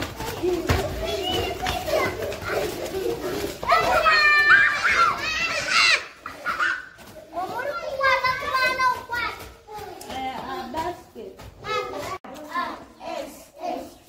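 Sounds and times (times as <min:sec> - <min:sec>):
children calling out and chattering: 0:00.0 - 0:14.0.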